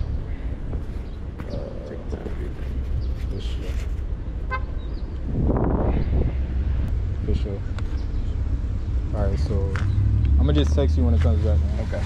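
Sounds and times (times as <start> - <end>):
car horn toot: 4.4 - 4.8.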